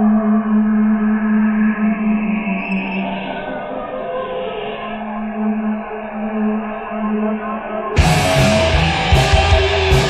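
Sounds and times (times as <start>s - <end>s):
electric guitar rock music: 8.0s - 10.0s.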